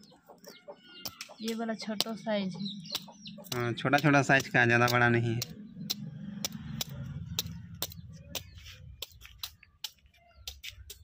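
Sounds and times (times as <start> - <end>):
snail shells cracking: 2.8 - 11.0.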